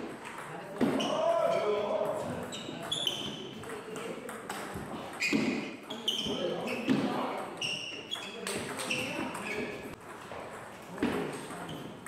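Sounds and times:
ping pong ball bouncing on table: 0.0 - 1.2, 1.9 - 5.6, 8.2 - 12.0.

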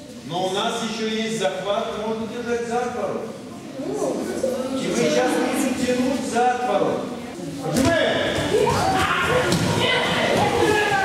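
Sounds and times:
children talking: 3.4 - 6.4, 7.0 - 11.0.

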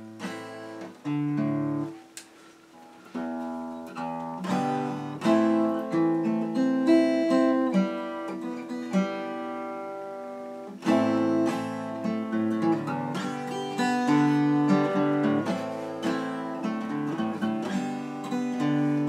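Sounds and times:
acoustic guitar strumming and picking: 0.0 - 19.0.

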